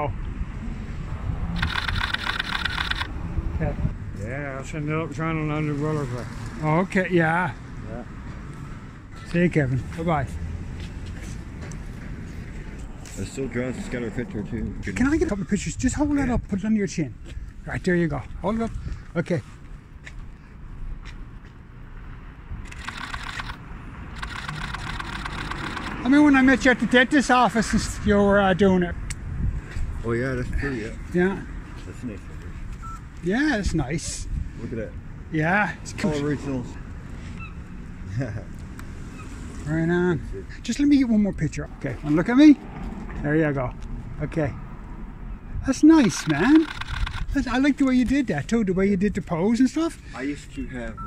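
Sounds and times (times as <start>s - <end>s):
distant traffic: 0.0s - 51.0s
low street rumble: 0.0s - 51.0s
wind rumble: 0.1s - 4.2s, 27.5s - 30.6s
camera shutter clicks: 1.6s - 3.1s, 22.6s - 23.6s, 24.2s - 26.0s, 46.0s - 47.3s.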